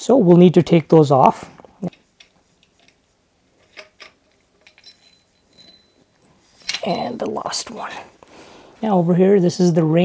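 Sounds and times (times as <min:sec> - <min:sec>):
screwdriver clicks and metal clinks: 0:03.6 - 0:08.0.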